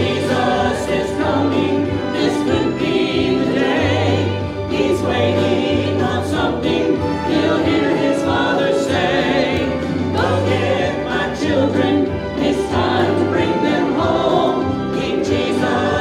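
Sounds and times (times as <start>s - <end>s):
choir singing gospel: 0.0s - 16.0s
instrumental accompaniment: 0.0s - 16.0s.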